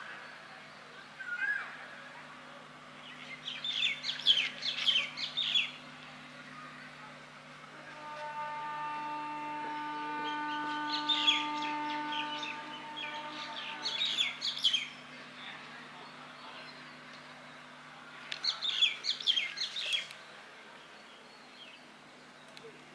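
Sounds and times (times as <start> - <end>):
faint low hum: 0.0 - 22.9
birds chirping: 2.9 - 7.4, 8.8 - 22.9.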